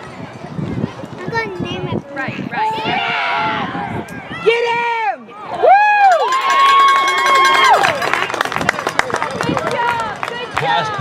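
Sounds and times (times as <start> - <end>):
crowd cheering: 5.2 - 11.0.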